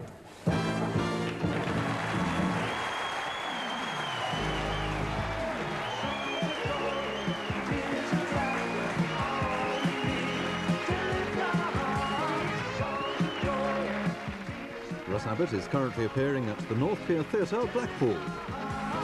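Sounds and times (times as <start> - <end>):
theme music with steady beat: 0.4 - 2.6, 4.4 - 19.0
audience applauding: 0.6 - 19.0.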